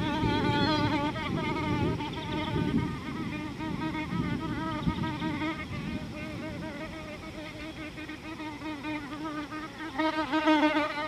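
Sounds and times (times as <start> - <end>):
flying insect buzzing: 0.0 - 11.0.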